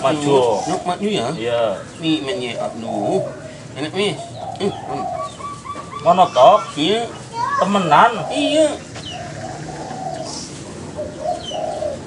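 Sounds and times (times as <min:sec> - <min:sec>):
dove cooing: 0:00.0 - 0:12.0
small bird chirping: 0:03.8 - 0:12.0.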